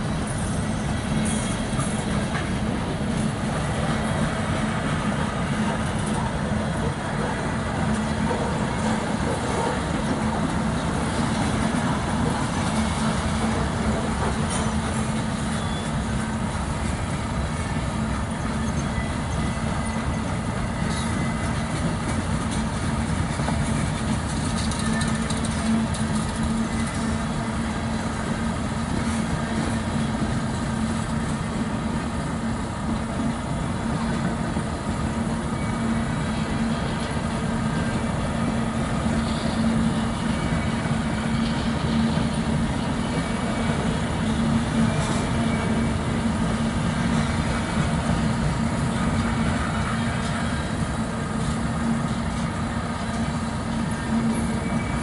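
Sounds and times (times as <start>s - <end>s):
train wheels clattering on rail: 0.0s - 55.0s.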